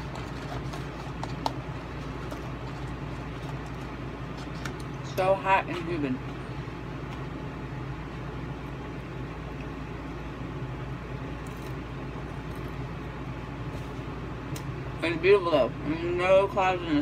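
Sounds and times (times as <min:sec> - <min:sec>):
low mechanical hum: 0:00.0 - 0:17.0.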